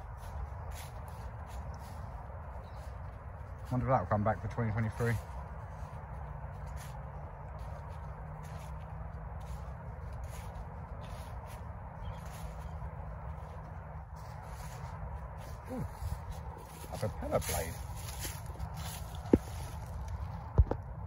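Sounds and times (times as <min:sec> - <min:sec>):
footsteps on dry leaves: 0:00.0 - 0:21.0
outdoor background noise: 0:00.0 - 0:21.0.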